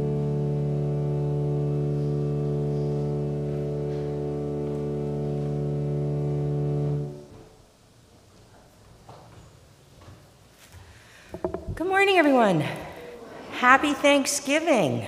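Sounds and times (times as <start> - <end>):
organ sustained chord: 0.0 - 7.5.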